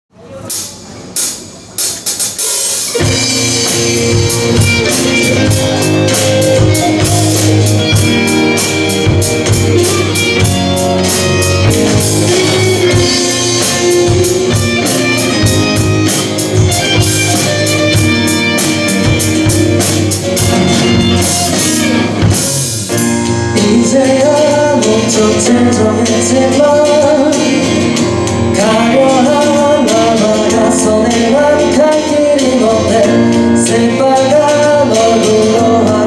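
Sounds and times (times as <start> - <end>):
live band playing: 0.2 - 36.0
drum and cymbal hits: 0.4 - 32.6
electric guitar: 2.4 - 36.0.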